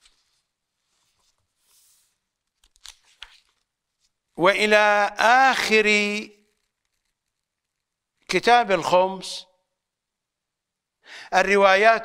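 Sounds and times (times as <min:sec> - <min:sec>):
paper page turning: 0:00.0 - 0:04.2, 0:06.4 - 0:07.8.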